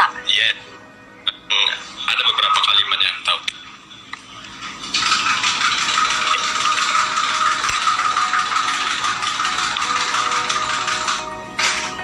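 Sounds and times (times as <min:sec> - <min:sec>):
music: 0:00.0 - 0:12.0.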